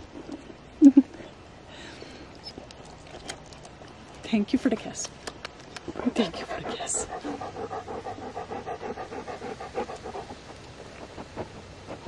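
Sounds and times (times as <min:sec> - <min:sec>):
dog panting rapidly: 0:06.0 - 0:12.0.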